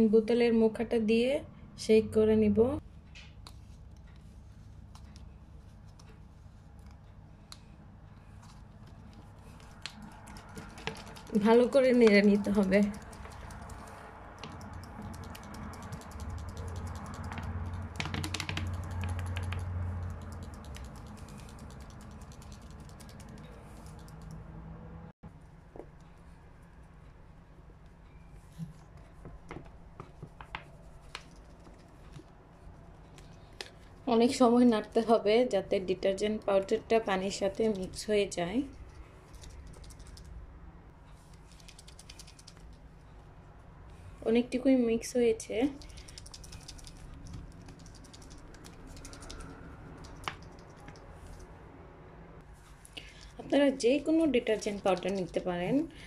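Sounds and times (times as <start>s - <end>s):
steady low hum: 0.0s - 56.0s
plastic bottle rattling when shaken: 8.8s - 24.0s, 54.3s - 55.5s.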